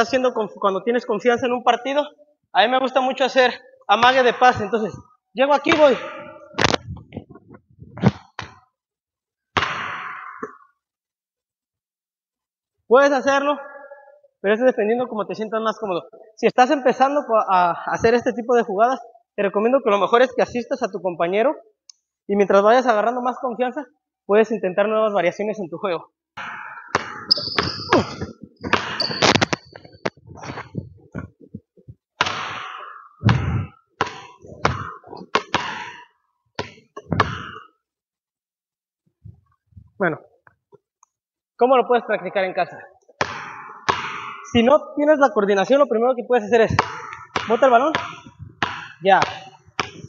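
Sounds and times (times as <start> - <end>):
basketball bouncing on wooden floor: 9.6 - 10.6, 26.5 - 36.0, 36.6 - 37.7, 43.2 - 44.5, 46.7 - 50.0
sneaker squeaks: 26.6 - 31.3, 32.5 - 37.7.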